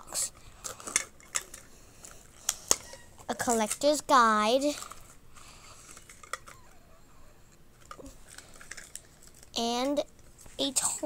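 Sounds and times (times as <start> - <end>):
packaging rustling: 7.7 - 10.6.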